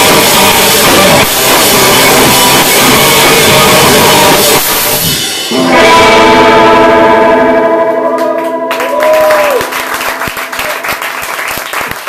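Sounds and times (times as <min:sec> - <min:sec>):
distorted electric guitar chord: 0:00.0 - 0:08.8
audience applause: 0:08.2 - 0:12.0.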